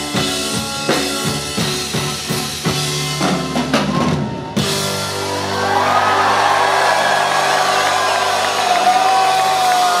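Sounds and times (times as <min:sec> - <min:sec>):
crowd cheering and whooping: 0:04.0 - 0:10.0.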